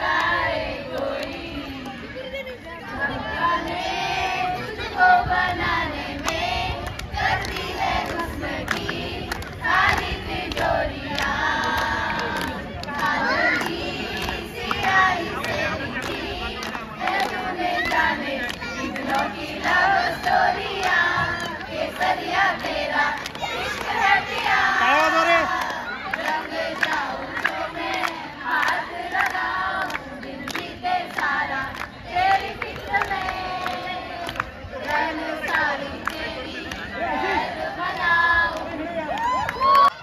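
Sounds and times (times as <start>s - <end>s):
women and girls singing in chorus: 0.0s - 40.0s
sharp hand claps: 6.2s - 36.8s.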